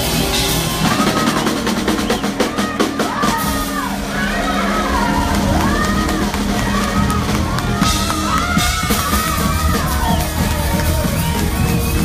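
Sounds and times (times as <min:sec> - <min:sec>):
blues-rock band playing: 0:00.0 - 0:12.0
rapid drum fill: 0:00.0 - 0:12.0.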